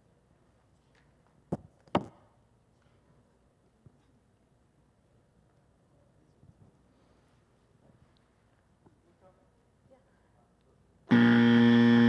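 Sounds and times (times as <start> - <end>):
electronic timer buzzer: 11.1 - 12.0.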